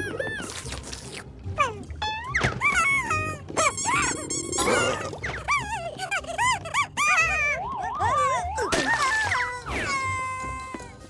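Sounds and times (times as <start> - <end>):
background music: 0.0 - 11.0
squeaky gibberish cartoon voices: 1.6 - 10.8.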